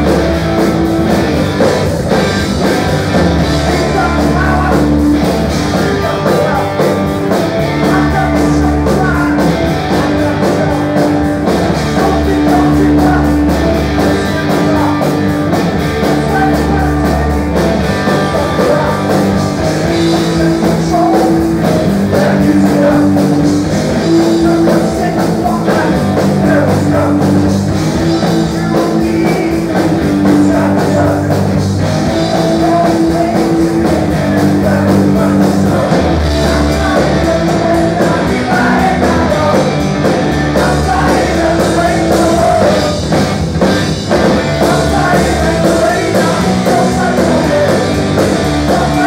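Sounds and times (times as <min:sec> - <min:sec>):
live rock band playing: 0:00.0 - 0:49.0
person singing: 0:03.4 - 0:15.2, 0:16.0 - 0:43.2, 0:44.2 - 0:49.0.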